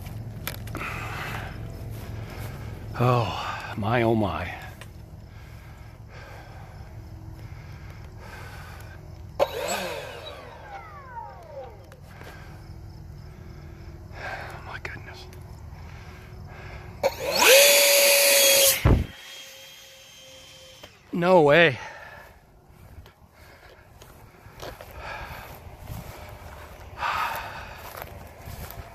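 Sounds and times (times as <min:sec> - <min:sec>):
electric ducted fan whining: 0:00.0 - 0:28.9.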